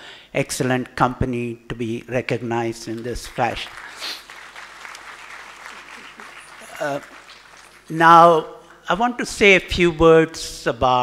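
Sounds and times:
audience applauding: 2.9 - 8.4.

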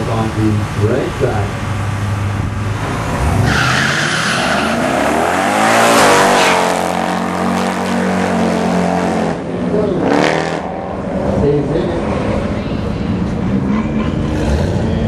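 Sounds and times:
car engines revving: 0.0 - 15.0
tire squeal: 3.4 - 7.9.

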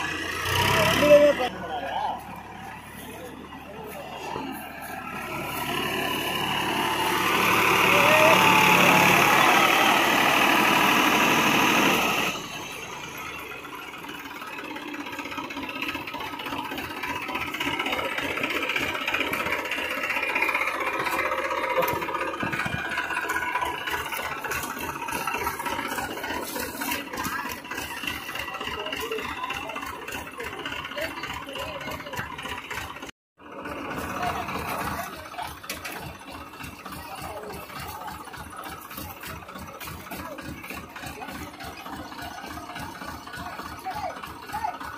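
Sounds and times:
rotavator churning ground: 0.0 - 44.9
tractor engine running hard: 0.0 - 44.9
men talking: 0.6 - 4.7.

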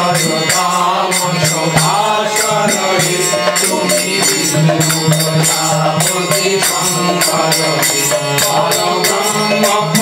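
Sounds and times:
percussion beat: 0.0 - 10.0
voices chanting a mantra: 0.0 - 10.0.

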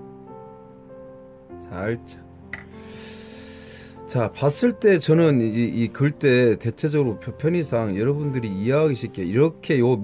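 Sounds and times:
soft instrumental music: 0.0 - 10.0.

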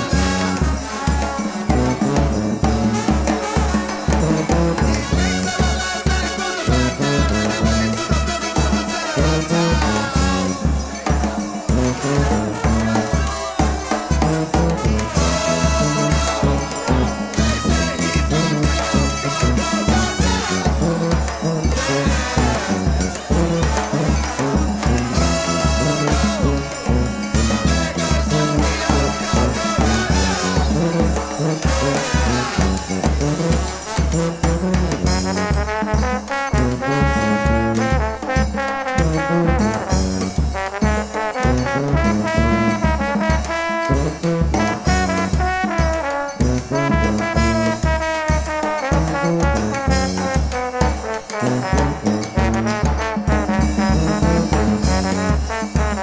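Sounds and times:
brass band playing upbeat tune: 0.0 - 56.0
sousaphone bass line: 4.1 - 35.5.

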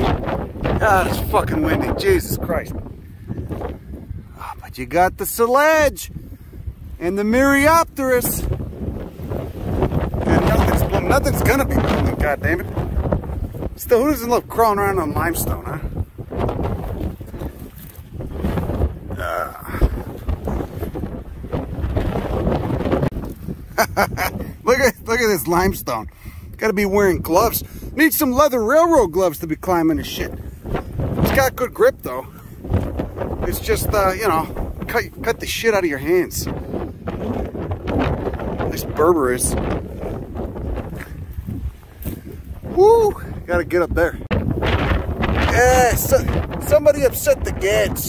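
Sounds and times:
strong wind buffeting microphone: 0.0 - 48.0.

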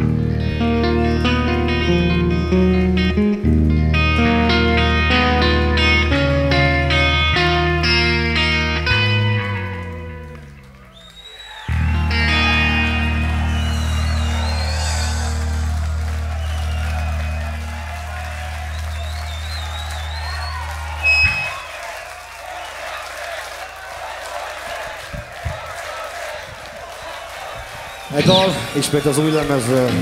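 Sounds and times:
crowd cheering: 0.0 - 30.0
heavy metal chord on guitars and bass: 11.7 - 21.5.

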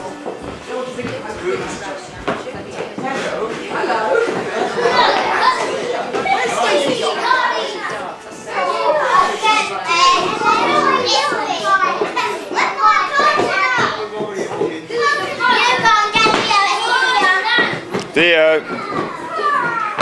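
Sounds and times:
young children talking and calling out: 3.8 - 14.2, 14.8 - 20.0.

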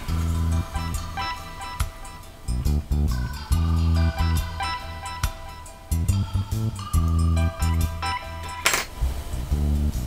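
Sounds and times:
guitar and bass music: 2.5 - 4.6, 5.9 - 8.7, 9.4 - 10.0.

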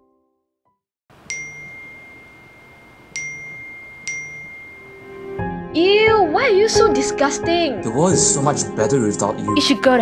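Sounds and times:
phone notification chime: 1.3 - 5.4.

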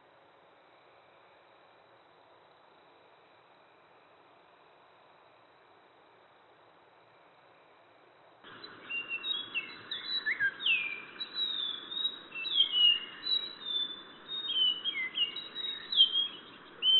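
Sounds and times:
steady hiss: 0.0 - 16.9
birds chirping and whistling: 8.5 - 16.9.

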